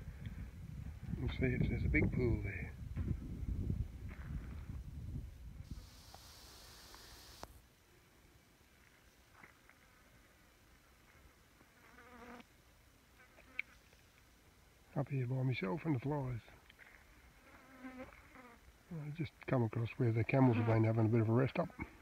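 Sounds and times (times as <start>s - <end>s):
flies buzzing: 5.7s - 7.6s, 11.7s - 12.5s
hiss: 5.7s - 7.6s.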